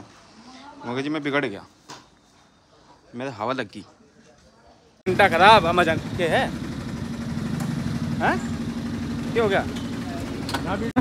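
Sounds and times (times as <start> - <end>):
street traffic: 4.8 - 11.0
vehicle engine idling: 5.1 - 11.0.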